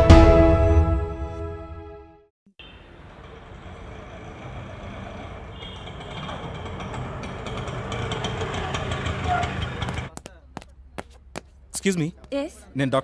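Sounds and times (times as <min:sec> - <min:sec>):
auto-rickshaw engine running: 0:02.6 - 0:10.2.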